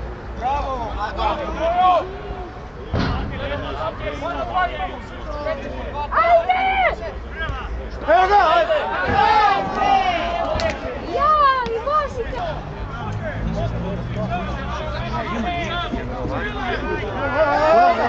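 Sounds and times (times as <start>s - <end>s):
dull thud: 2.9s - 3.8s
people shouting: 3.7s - 7.1s, 8.1s - 12.6s, 15.0s - 18.0s.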